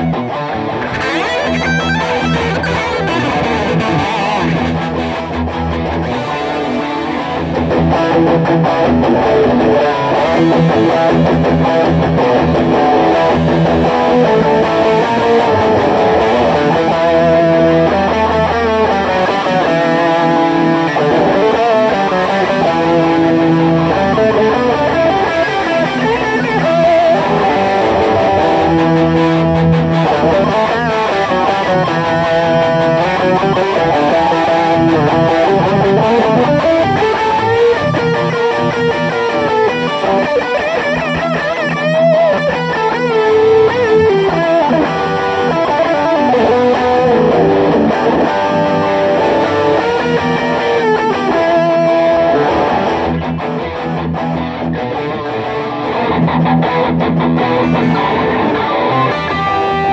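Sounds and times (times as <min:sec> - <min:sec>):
electric guitars playing metal: 0:00.0 - 0:59.9.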